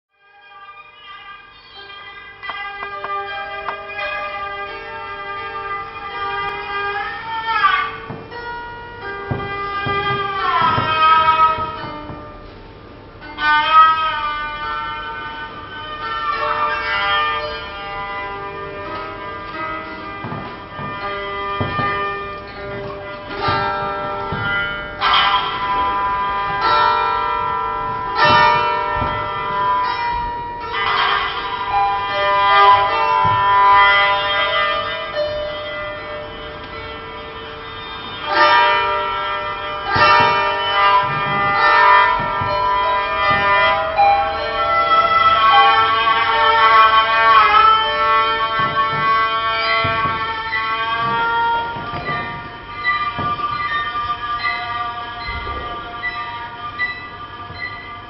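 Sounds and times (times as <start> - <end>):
horned fiddle playing: 0.7 - 58.0
plucked string instrument: 2.4 - 58.0.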